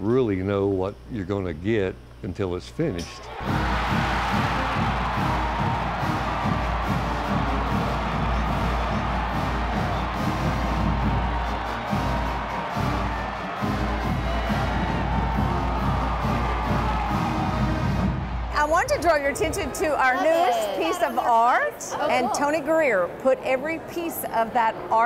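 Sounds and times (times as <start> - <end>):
stadium crowd cheering: 2.9 - 22.6
marching band playing: 3.4 - 19.8.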